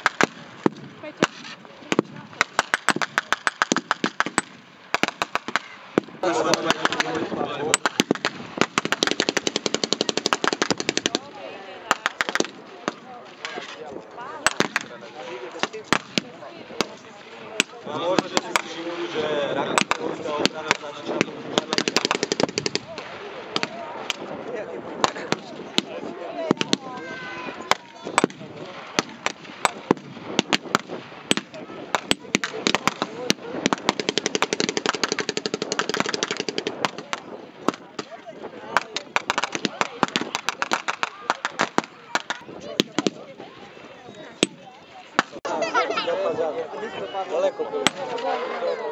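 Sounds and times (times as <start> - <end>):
rapid blank gunfire: 0.0 - 13.1, 14.4 - 15.0, 15.6 - 24.2, 25.0 - 27.0, 27.7 - 43.3
machine-gun burst: 7.8 - 11.3, 18.1 - 23.8, 27.7 - 37.1.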